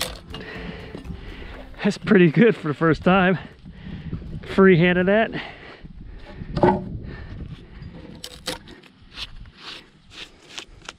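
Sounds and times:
handling wood: 0:00.0 - 0:02.4, 0:06.2 - 0:06.9
man speaking: 0:01.8 - 0:03.5.

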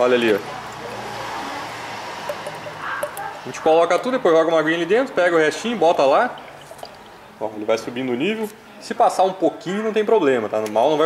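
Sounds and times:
liquid trickling pour: 0:00.7 - 0:03.4, 0:05.4 - 0:07.5.

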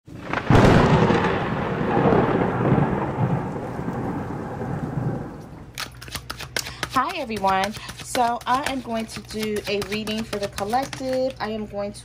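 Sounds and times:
rain: 0:00.1 - 0:05.8
thunderclap crack and rumble: 0:00.1 - 0:05.8.

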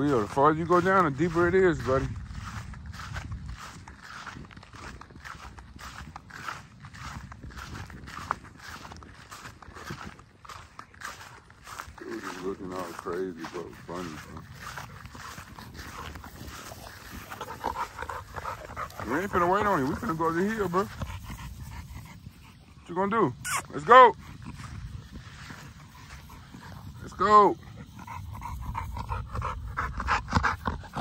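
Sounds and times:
footsteps through grass: 0:00.0 - 0:29.1.

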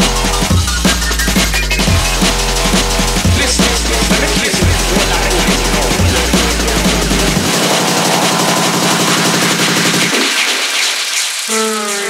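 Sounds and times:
fast drum roll of hits: 0:00.0 - 0:11.2
electronic dance music: 0:00.0 - 0:11.4
rising synth wash: 0:00.0 - 0:11.5.

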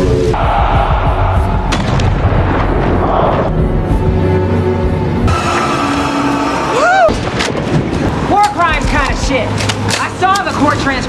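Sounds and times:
low rumble: 0:00.3 - 0:05.6
loud crash: 0:00.9 - 0:03.6.

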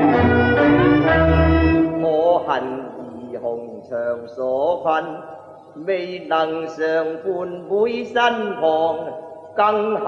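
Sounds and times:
man singing opera: 0:00.0 - 0:10.0.

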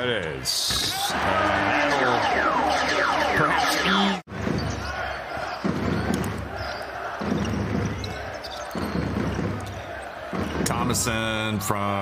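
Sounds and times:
arena crowd din: 0:00.3 - 0:12.0.

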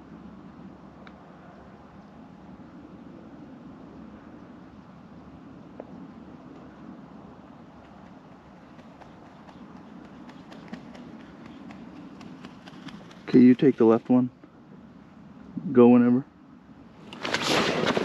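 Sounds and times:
quiet outdoor background noise: 0:00.0 - 0:18.0.

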